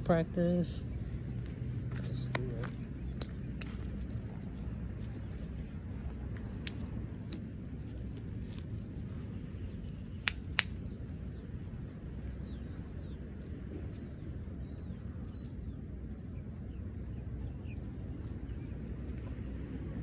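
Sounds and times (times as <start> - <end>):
low outdoor rumble: 0.0 - 20.0
sharp taps and clicks: 10.2 - 10.8.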